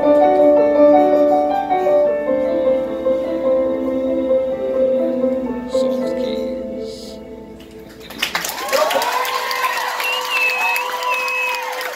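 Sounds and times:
sustained keyboard chord: 0.0 - 8.2
audience applause and cheering: 7.9 - 11.9.

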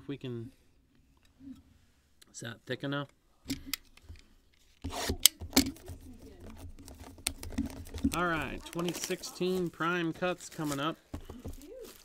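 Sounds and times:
hands rubbing cardboard box: 4.8 - 12.0.

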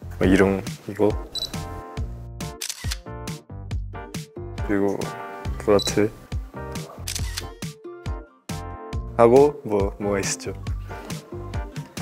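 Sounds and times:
background music: 0.0 - 12.0
camera shutter clicking: 2.6 - 3.1, 7.0 - 7.6.

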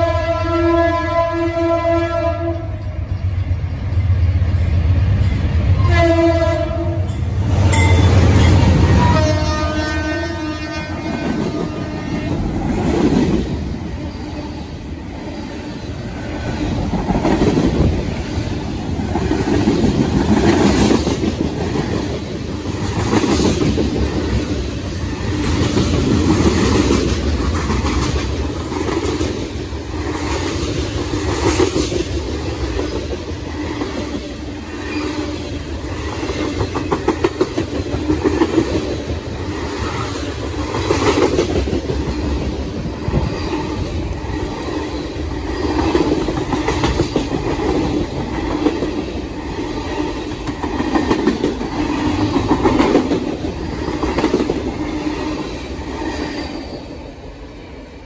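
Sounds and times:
freight train rumble: 0.0 - 58.0.

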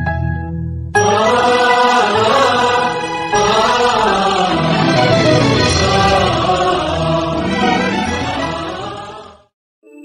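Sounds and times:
choir singing sustained chords: 1.0 - 9.5.

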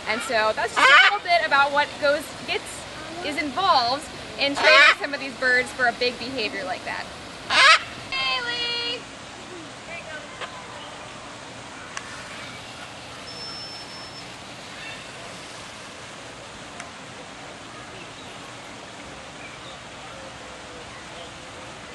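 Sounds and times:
outdoor hiss: 0.0 - 21.9.

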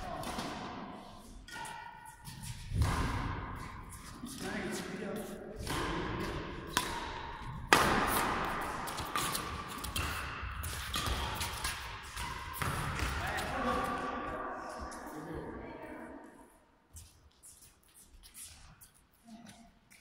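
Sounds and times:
voices in hall: 0.0 - 2.3, 13.0 - 16.9
rackets striking shuttlecock: 0.0 - 4.5, 5.6 - 13.8.

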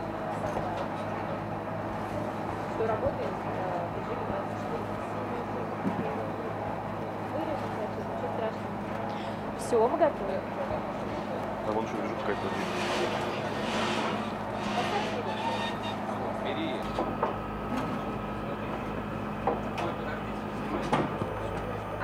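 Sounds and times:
oven machinery droning: 8.7 - 22.0.

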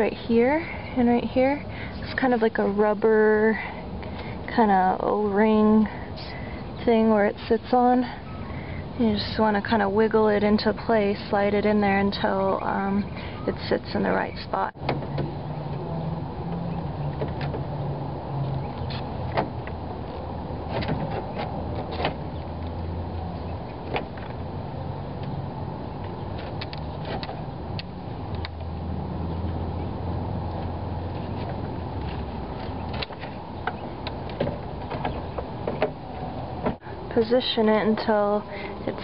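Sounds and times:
steady low hum: 0.0 - 39.0.

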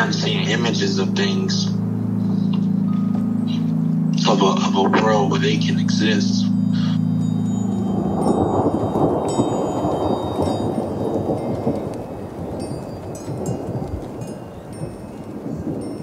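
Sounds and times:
low rain-like rumble: 0.0 - 16.0
high chime-like tones: 1.0 - 16.0.

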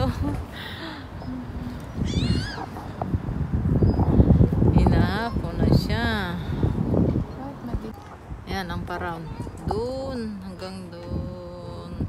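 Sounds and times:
steady low rumble: 0.0 - 12.0
cat meowing: 2.0 - 2.8.

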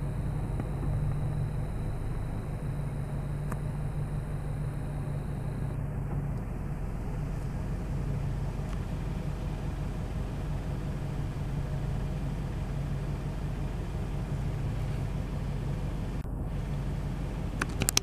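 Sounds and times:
car engine humming: 0.0 - 18.0.

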